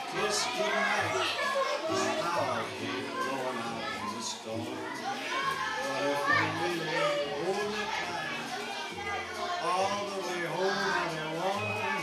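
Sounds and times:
children chattering and calling out: 0.0s - 12.0s
music playing: 0.0s - 12.0s.

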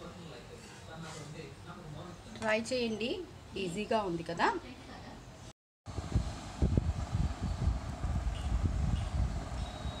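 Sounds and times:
low rumble on microphone: 5.9s - 10.0s.

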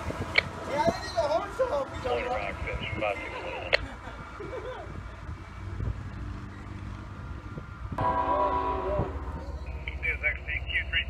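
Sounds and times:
diesel locomotive rumbling: 0.0s - 11.0s
train air horn chord: 8.0s - 9.3s.

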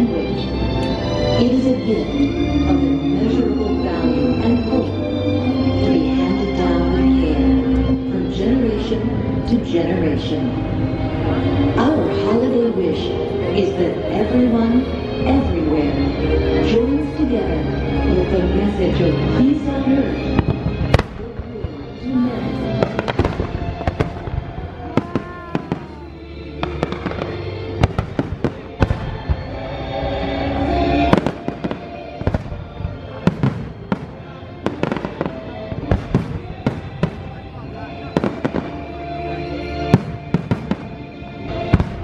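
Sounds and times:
music over loudspeakers: 0.0s - 42.0s
fireworks bangs and cracks: 20.4s - 21.9s, 22.7s - 29.6s, 31.1s - 38.9s, 39.9s - 42.0s.

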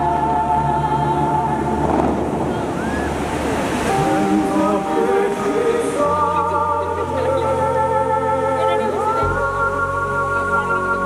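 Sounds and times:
fountain water jets spraying: 0.0s - 11.0s
music with held notes: 0.0s - 11.0s.

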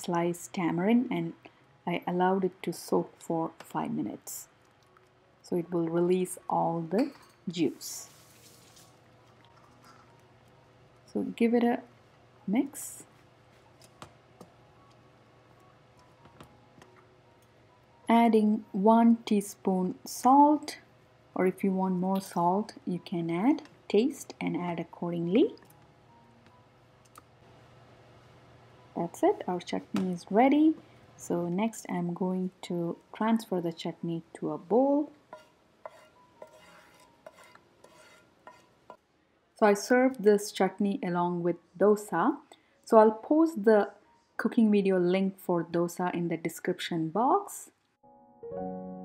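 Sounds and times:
spatula tapping non-stick pan: 35.3s - 39.0s.

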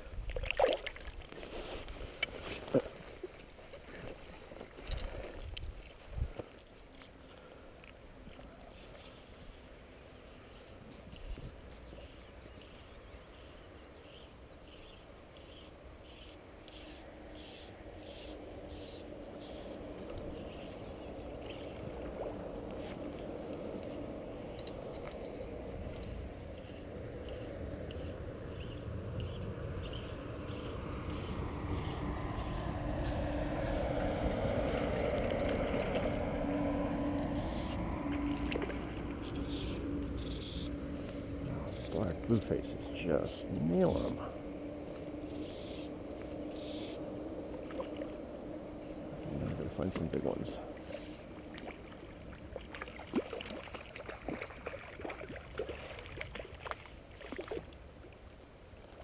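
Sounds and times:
distant vehicle passing: 16.2s - 57.7s.

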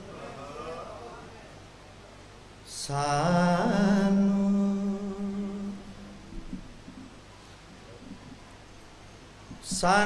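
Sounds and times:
faint room sound: 0.0s - 10.0s.

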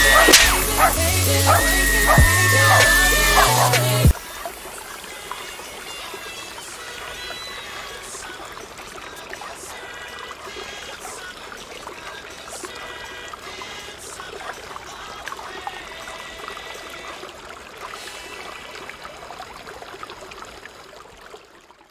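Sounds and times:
music playing: 0.0s - 4.2s
water running and pouring: 0.0s - 21.9s.

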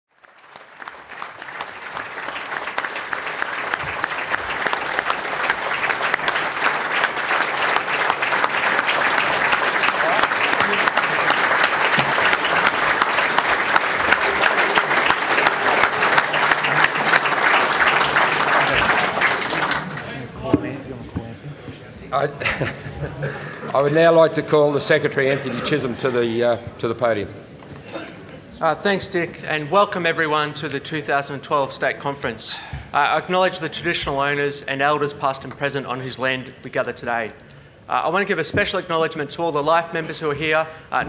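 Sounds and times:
large audience applauding: 0.1s - 20.3s.

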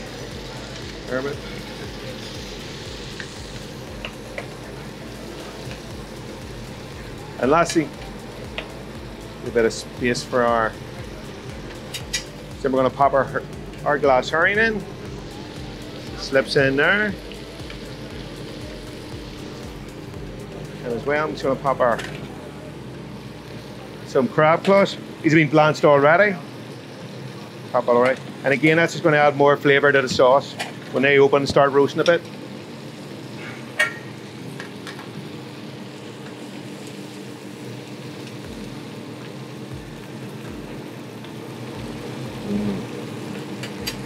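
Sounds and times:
low steady hum: 0.0s - 29.1s
fish sizzling in pans: 0.0s - 44.0s
gas range and hood drone: 0.0s - 44.0s.

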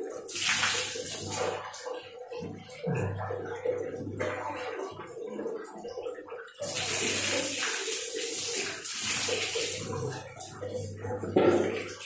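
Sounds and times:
water splashing onto floor: 0.0s - 12.0s.

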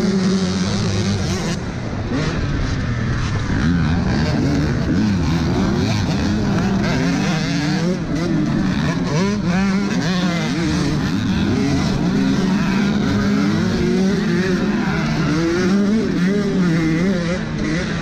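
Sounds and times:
dirt bike engine revving: 0.0s - 18.0s
other dirt bike engines: 0.0s - 18.0s.

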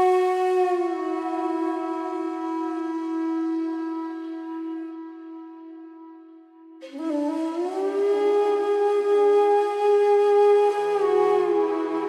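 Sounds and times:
flute sliding up in pitch: 6.8s - 12.0s.

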